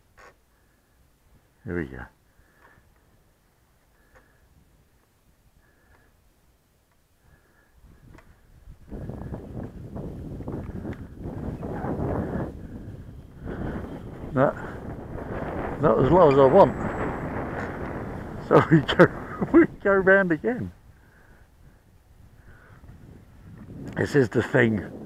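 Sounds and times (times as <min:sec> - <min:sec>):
gusty wind buffeting microphone: 0:07.3 - 0:25.0.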